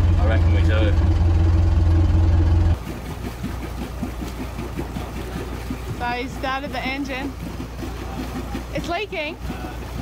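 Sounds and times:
boat engine idling: 0.0 - 10.0
water splashing from exhaust: 0.0 - 10.0.

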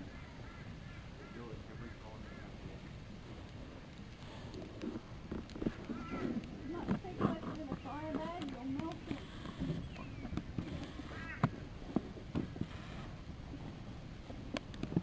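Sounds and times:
wood fire crackling and popping: 2.6 - 12.7, 14.4 - 15.0.

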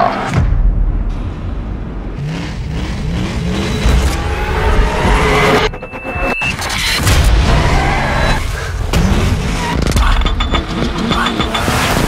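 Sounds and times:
car engine revving: 2.0 - 10.0
music: 3.8 - 12.0.

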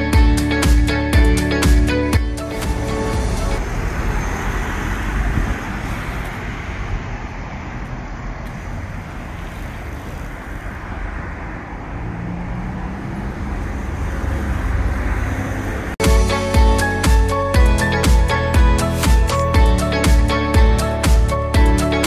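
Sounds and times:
city street traffic: 0.0 - 22.0.

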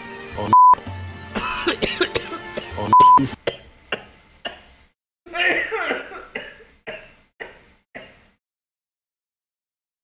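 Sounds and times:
man laughing hard: 5.3 - 6.4.

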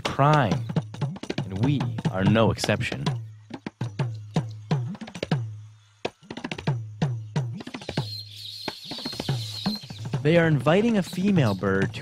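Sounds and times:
birds chattering: 0.0 - 12.0.

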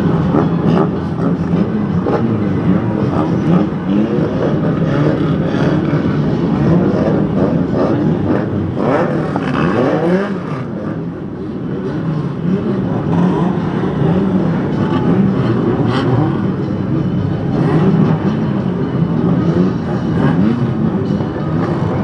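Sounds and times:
racing car engines revving: 0.0 - 22.0.

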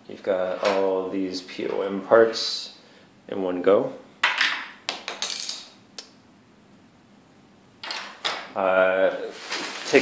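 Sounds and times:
plastic parts clattering on table: 4.2 - 5.7, 7.8 - 8.5.

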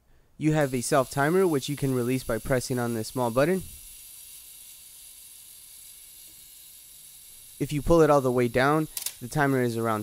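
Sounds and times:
faint room noise hiss: 0.0 - 10.0.

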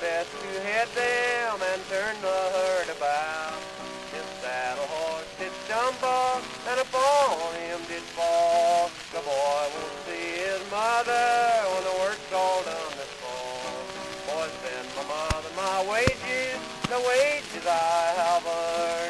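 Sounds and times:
old cowboy song with guitar: 0.0 - 19.0
record hiss and crackle: 0.0 - 19.0.

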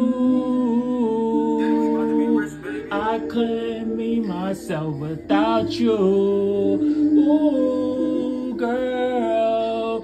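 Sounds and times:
man humming a slow melody: 0.0 - 10.0.

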